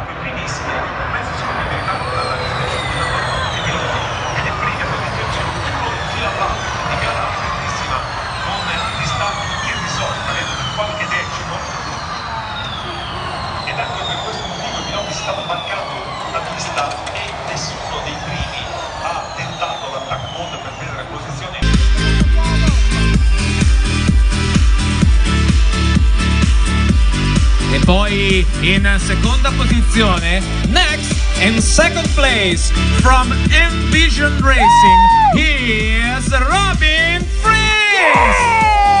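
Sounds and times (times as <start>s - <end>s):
electric race cars whining past: 0.0s - 21.6s
crowd noise: 0.0s - 39.0s.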